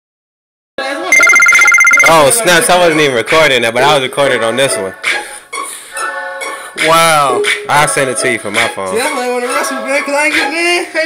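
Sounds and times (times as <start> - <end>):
electronic telephone-like ring: 1.2 - 2.3.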